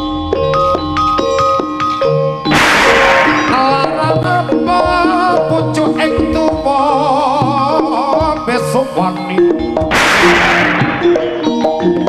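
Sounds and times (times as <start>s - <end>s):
sliding melody: 2.4s - 7.2s, 9.9s - 12.0s
loud cymbal crash: 2.5s - 4.6s, 9.9s - 11.7s
pitched metal percussion: 2.5s - 6.5s, 9.6s - 12.0s.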